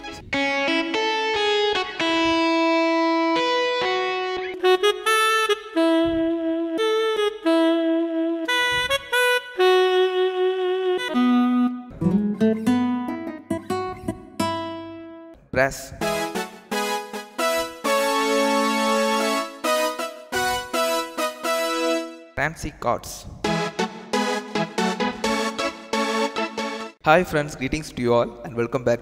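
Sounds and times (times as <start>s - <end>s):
keyboard playing slow melody: 0.0s - 15.4s, 16.0s - 22.4s, 23.4s - 27.0s.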